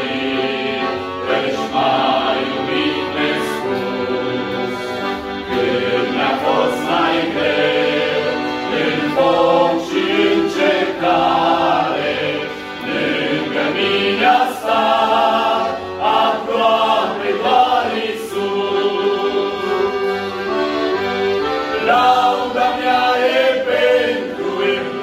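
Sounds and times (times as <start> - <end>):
accordion: 0.0 - 25.0
male group singing in harmony: 0.0 - 25.0.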